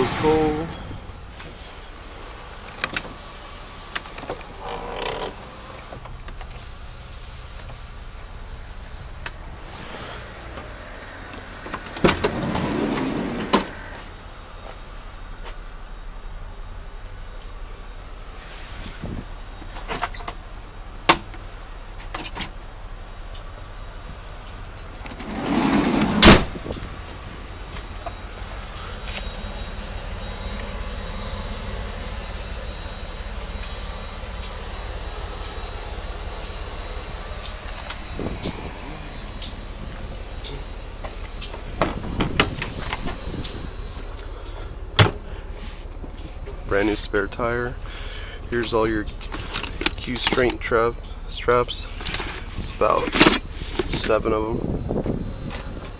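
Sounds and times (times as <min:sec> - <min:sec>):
van door slamming: 0:25.2 - 0:26.7, 0:41.6 - 0:43.4, 0:45.0 - 0:45.3.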